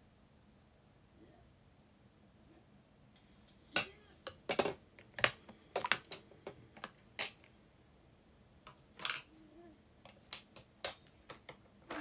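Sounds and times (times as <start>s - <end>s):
small objects clicking and tapping: 3.7s - 7.5s, 10.0s - 12.0s.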